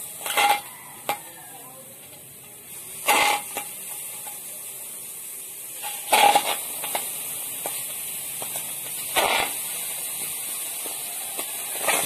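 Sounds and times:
wok ringing: 0:00.0 - 0:04.8, 0:05.7 - 0:12.0.

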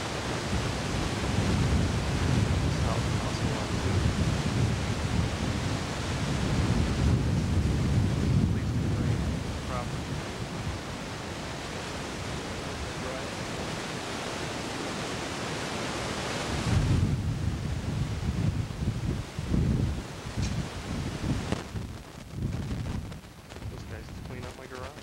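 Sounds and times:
wind on microphone: 0:00.0 - 0:25.0.

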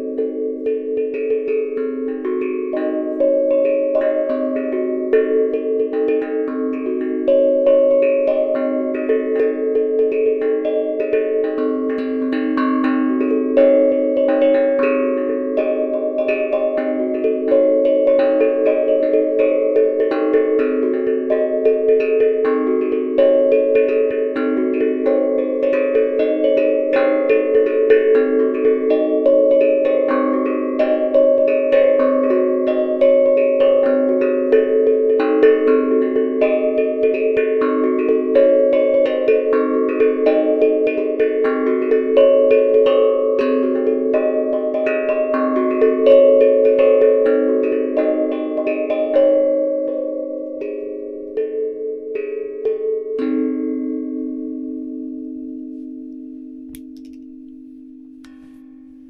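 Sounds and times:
steel tongue drum melody: 0:00.0 - 0:59.0.

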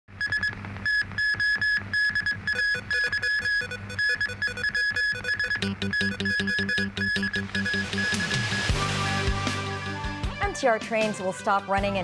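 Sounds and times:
high synthesizer beeps: 0:00.2 - 0:08.7
pulsing bass: 0:05.3 - 0:10.6.

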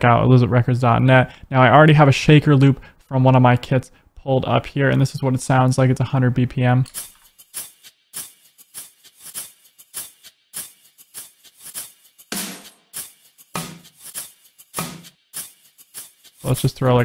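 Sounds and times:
shaker loop: 0:07.0 - 0:17.0.

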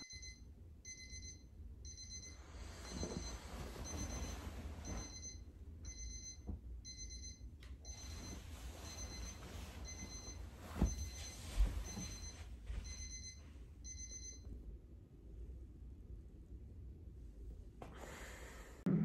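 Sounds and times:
alarm clock beeping: 0:00.0 - 0:14.5
low steady hum: 0:00.0 - 0:19.0.

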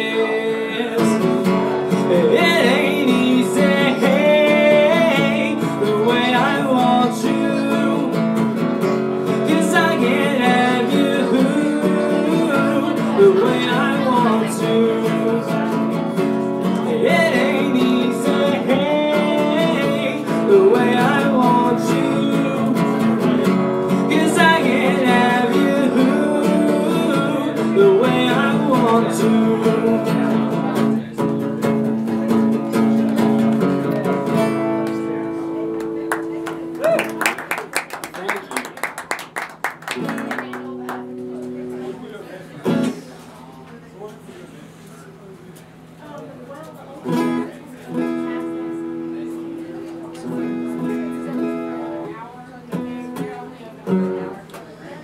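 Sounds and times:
man singing: 0:00.0 - 0:31.1
acoustic guitar: 0:00.0 - 0:55.0.

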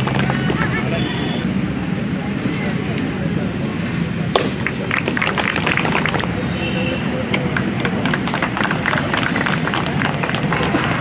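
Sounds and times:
scattered hand claps: 0:00.0 - 0:00.6, 0:04.4 - 0:06.4, 0:07.3 - 0:11.0
crowd chatter and murmur: 0:00.0 - 0:11.0.

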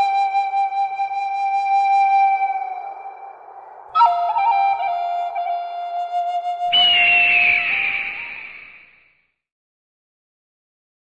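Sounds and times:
flute playing held notes: 0:00.0 - 0:08.5.

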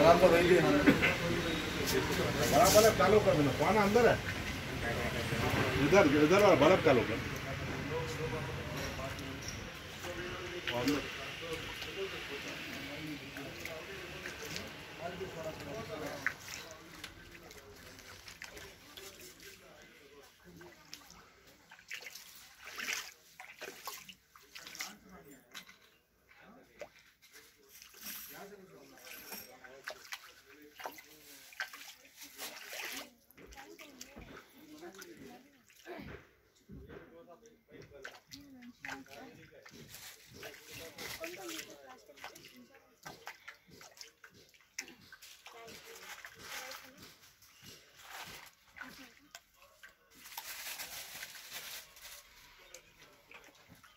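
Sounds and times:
people talking faintly: 0:00.0 - 0:53.9
footsteps splashing through water: 0:09.0 - 0:25.7, 0:29.7 - 0:35.9, 0:38.0 - 0:50.4.

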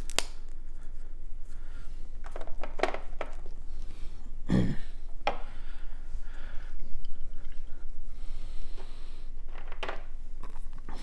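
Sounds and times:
faint handling noise: 0:00.0 - 0:04.1.

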